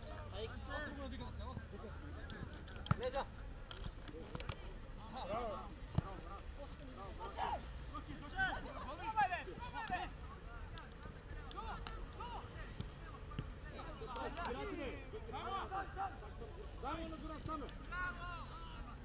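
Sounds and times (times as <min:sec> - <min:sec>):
players shouting: 0:11.5 - 0:19.0.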